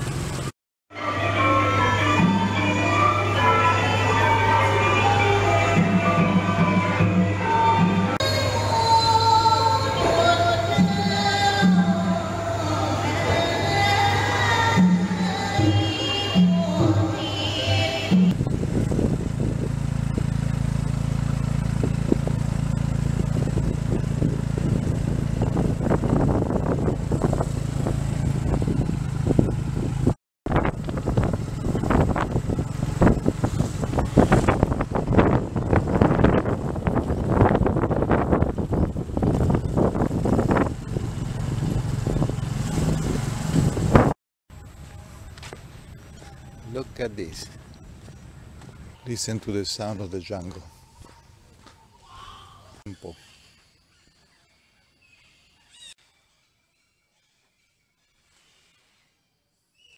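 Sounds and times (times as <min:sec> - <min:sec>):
motorcycle engine running: 0:00.0 - 0:00.5, 0:18.0 - 0:49.6
wind buffeting microphone: 0:18.3 - 0:44.2.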